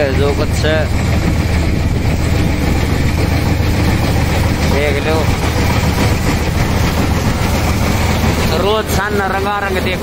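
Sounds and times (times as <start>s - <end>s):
combine harvester engine drone: 0.0s - 10.0s.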